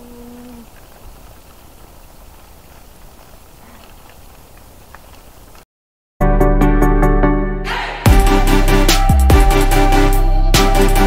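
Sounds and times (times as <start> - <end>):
person humming: 0.0 - 0.7
bicycle tyres rolling: 0.0 - 5.6.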